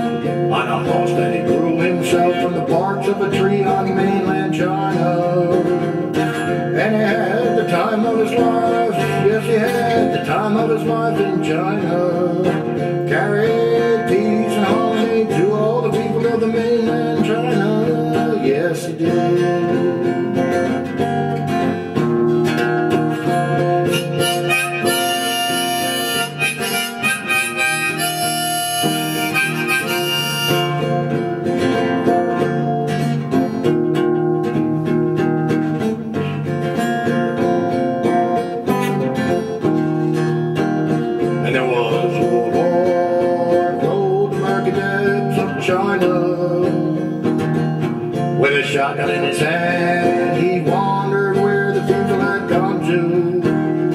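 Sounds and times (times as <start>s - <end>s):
acoustic guitar strumming: 0.0s - 53.9s
harmonica melody: 0.0s - 53.9s.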